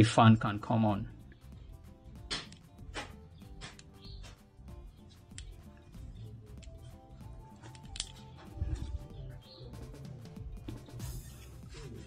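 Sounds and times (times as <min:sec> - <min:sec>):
background music held notes: 0:00.0 - 0:12.0
sharp ticks: 0:02.2 - 0:08.4.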